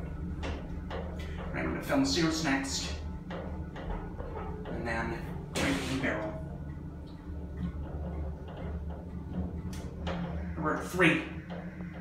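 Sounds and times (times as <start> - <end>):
elevator humming: 0.0 - 12.0.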